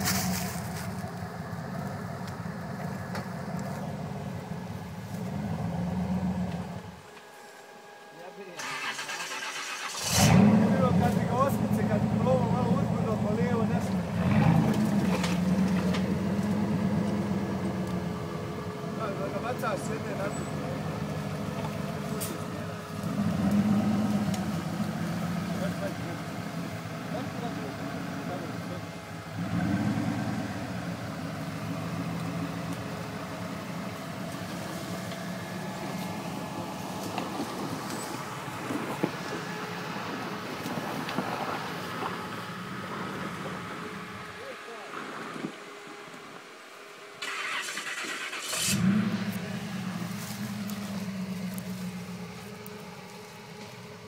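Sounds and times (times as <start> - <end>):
car engine revving under load: 8.7 - 44.4, 47.2 - 54.0.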